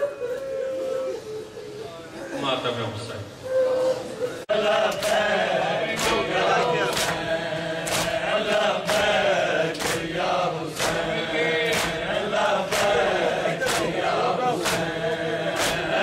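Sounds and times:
men chanting in unison: 0:04.4 - 0:16.0
chest-beating slaps: 0:06.9 - 0:16.0.

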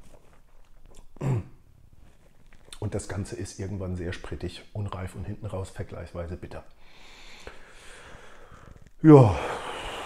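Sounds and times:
man breathing through nose: 0:06.8 - 0:10.0.

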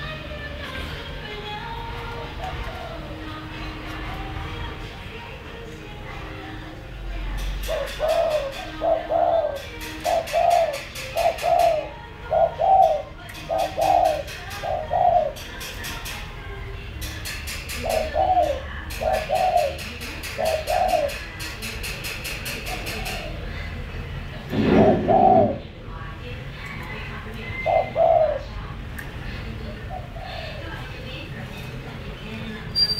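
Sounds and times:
dove cooing: 0:00.6 - 0:04.8, 0:07.4 - 0:16.1, 0:17.6 - 0:23.8, 0:24.5 - 0:25.8, 0:27.4 - 0:28.7, 0:29.6 - 0:31.1.

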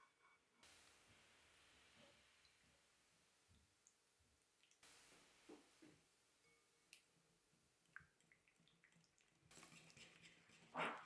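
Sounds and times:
faint hiss: 0:00.5 - 0:10.8.

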